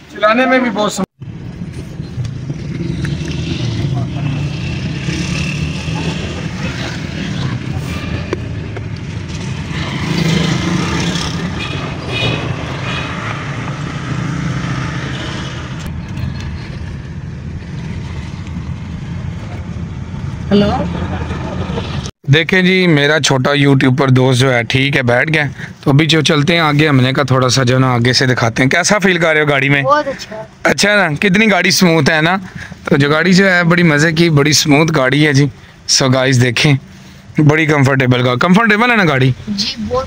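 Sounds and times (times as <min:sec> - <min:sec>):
car road and engine noise: 0:00.0 - 0:40.0.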